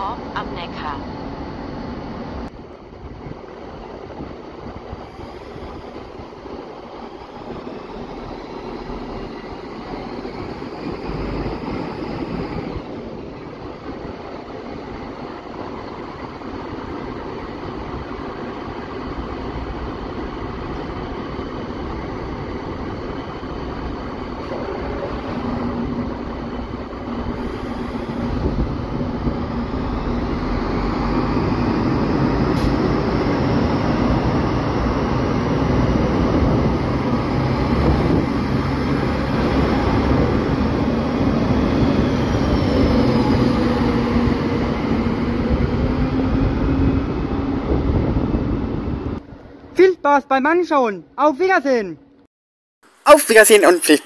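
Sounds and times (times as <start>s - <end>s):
diesel railcar accelerating past: 0.0s - 49.7s.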